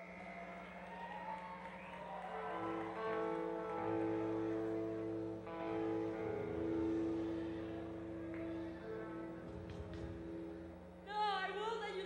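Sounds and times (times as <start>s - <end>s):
sound system hum: 0.0s - 12.0s.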